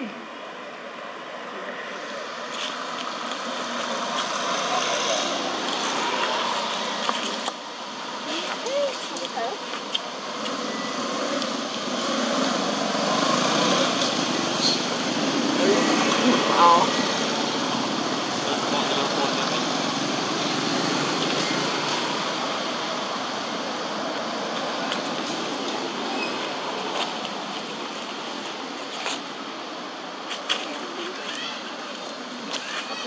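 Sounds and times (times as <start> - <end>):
road traffic rushing: 0.0 - 33.0
faint calls or voices: 14.6 - 19.9.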